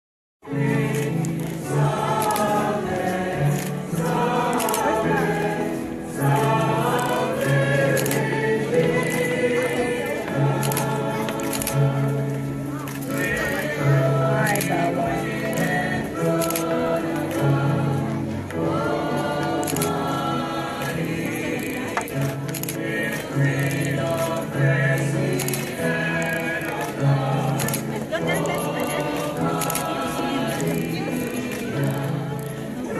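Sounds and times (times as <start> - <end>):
choir singing a hymn: 0.4 - 32.9.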